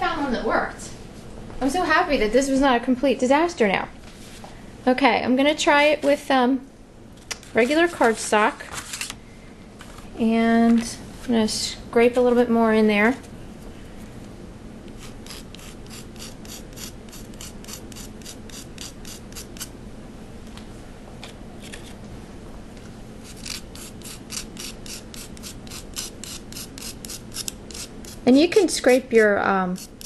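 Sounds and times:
knife blade scraping pastel stick: 0:14.9 - 0:19.7, 0:23.2 - 0:30.0.

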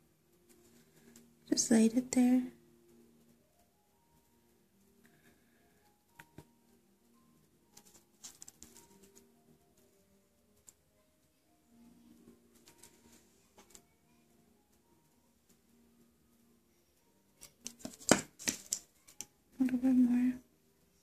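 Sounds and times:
faint background music: 0:00.0 - 0:21.0
small clicks and taps: 0:17.4 - 0:19.4.

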